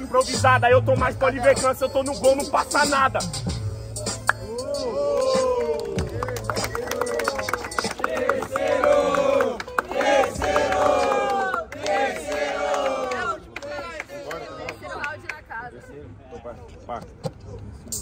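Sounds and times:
hip-hop beat: 0.0 - 13.5
crowd shouting and cheering: 4.0 - 15.1.

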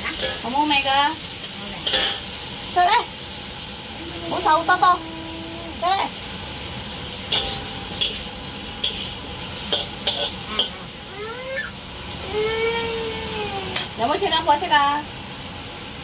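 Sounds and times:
food sizzling as it fries: 0.0 - 16.0
person's drawn-out voice: 4.0 - 5.9.

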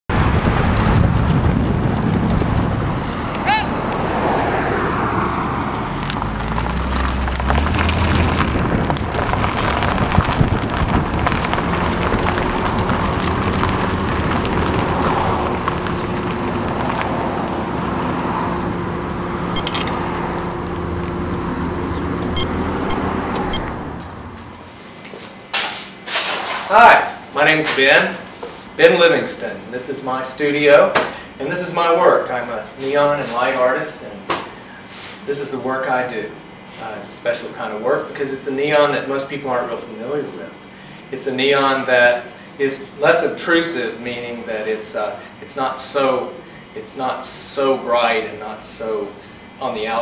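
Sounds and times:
traffic: 0.1 - 26.1, 32.2 - 36.8, 47.5 - 50.0.

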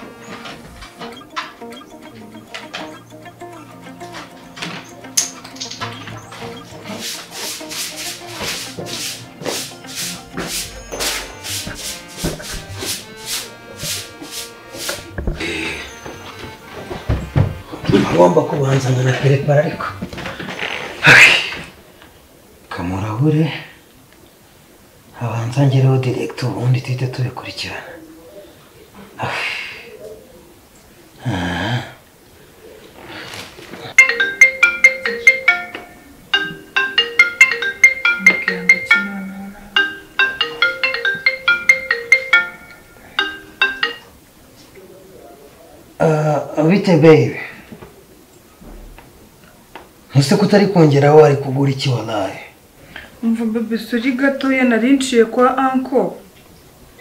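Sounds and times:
marimba-like phone ringtone: 0.0 - 16.8, 34.0 - 44.2
background music: 0.0 - 20.2, 34.0 - 44.2
straw broom swishing: 6.3 - 16.2.

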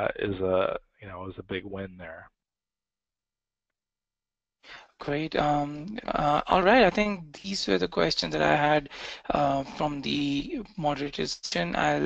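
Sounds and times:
person speaking: 0.0 - 2.2, 4.7 - 12.0
short intake of breath: 8.9 - 9.3.

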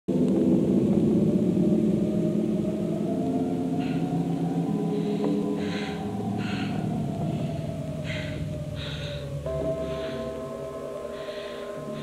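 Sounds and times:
low soundtrack drone: 0.1 - 12.0.

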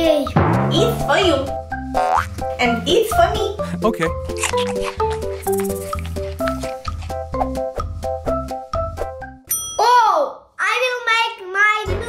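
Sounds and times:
background music with steady beat: 0.0 - 9.5
bell-like ding: 9.5 - 10.0.

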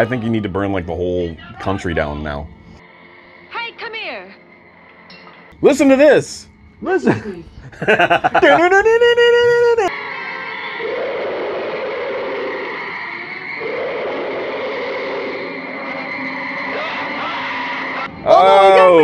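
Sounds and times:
film soundtrack hiss: 1.7 - 10.3
thin high level tone: 2.9 - 7.3, 15.2 - 19.0
man exclaiming: 8.3 - 9.9, 18.4 - 19.0.

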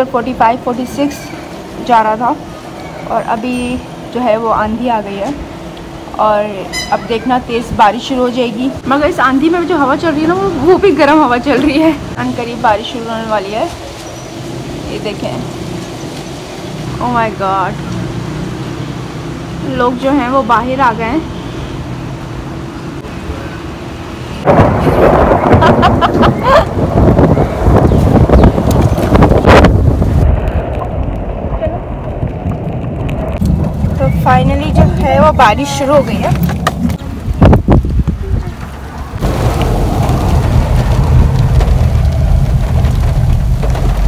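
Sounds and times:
wind buffeting microphone: 1.4 - 17.7, 24.4 - 44.0
wind rushing: 24.4 - 44.0
heavy rain on a car: 29.0 - 44.0.

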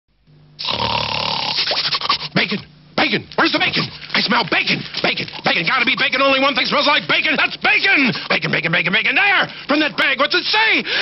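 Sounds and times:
dog sniffing: 1.5 - 2.4.

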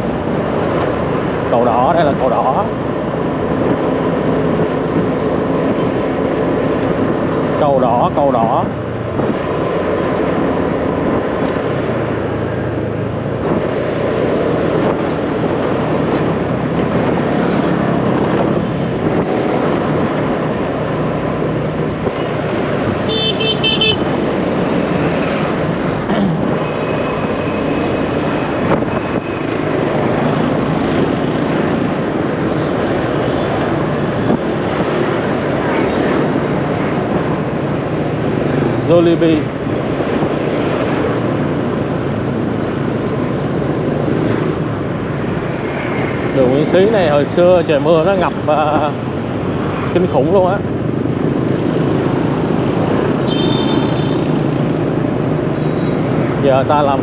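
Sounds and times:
motorbike engines: 0.0 - 57.0
road noise: 0.0 - 57.0
horn toots: 23.1 - 24.1, 53.3 - 54.3.

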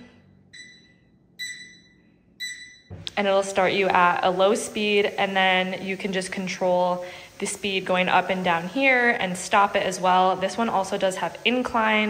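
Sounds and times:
high electronic beeps: 0.5 - 3.0.

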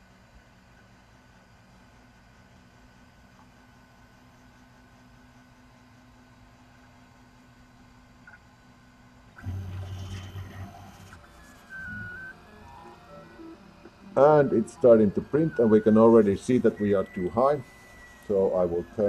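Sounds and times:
printer hum: 0.0 - 19.0
stepper motors whirring: 9.4 - 19.0.

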